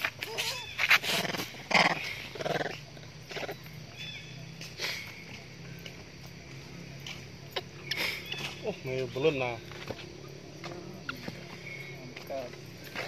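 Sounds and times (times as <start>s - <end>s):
macaques calling: 0.0s - 13.0s.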